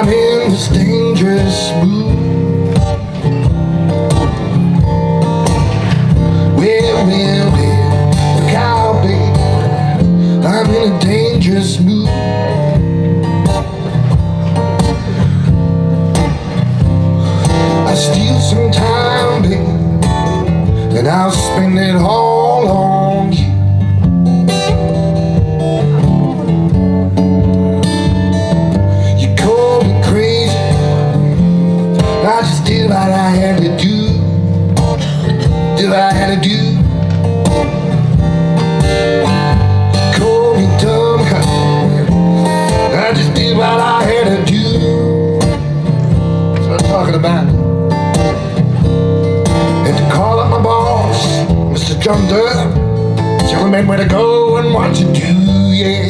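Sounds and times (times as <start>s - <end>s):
blues acoustic guitar: 0.0s - 56.0s.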